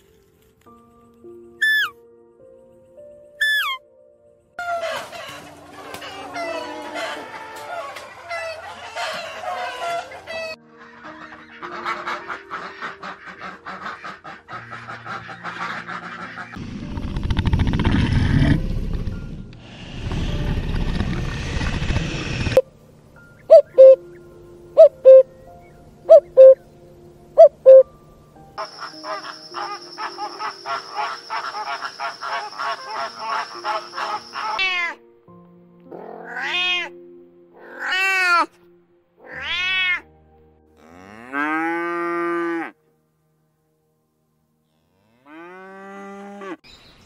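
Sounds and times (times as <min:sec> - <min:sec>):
soft background music: 0:00.0 - 0:47.0
very loud short animal calls: 0:01.6 - 0:01.9
chickens clucking: 0:04.6 - 0:16.6, 0:28.6 - 0:34.6
flamingo flock chatter: 0:28.7 - 0:34.6.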